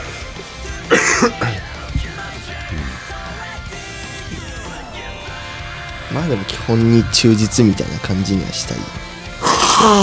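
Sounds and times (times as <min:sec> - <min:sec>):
band music: 0:00.0 - 0:09.0
man coughing into microphone: 0:00.8 - 0:01.8.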